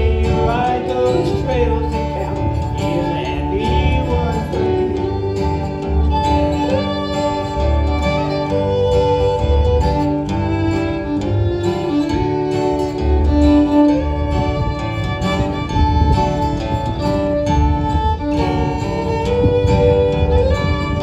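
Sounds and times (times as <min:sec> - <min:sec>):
bowed fiddle: 0:00.0 - 0:21.0
plucked upright bass: 0:00.0 - 0:21.0
strummed acoustic guitar: 0:00.0 - 0:21.0.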